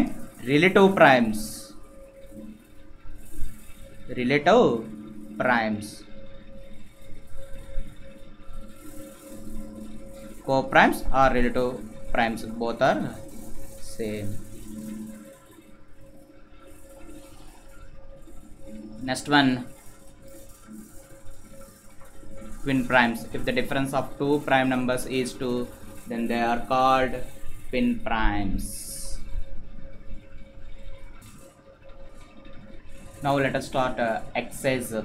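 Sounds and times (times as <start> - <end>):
faint irregular low noise: 0.0 - 35.0
steady background hum: 0.0 - 35.0.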